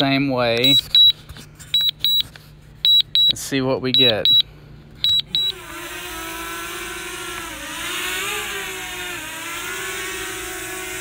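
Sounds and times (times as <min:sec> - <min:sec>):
remote controller beeping: 0:00.6 - 0:01.2, 0:01.8 - 0:02.3, 0:02.9 - 0:04.4, 0:05.0 - 0:05.6.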